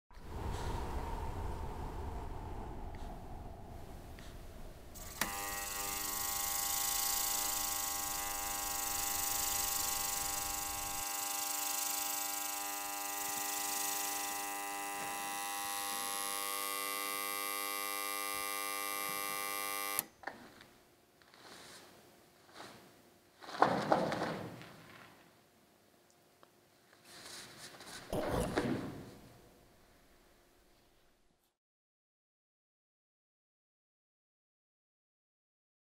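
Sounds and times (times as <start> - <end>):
electrical hum: 0.2 - 13.6.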